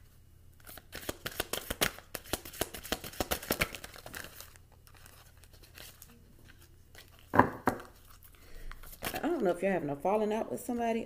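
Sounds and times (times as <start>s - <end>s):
cards being shuffled by hand: 0.6s - 9.4s.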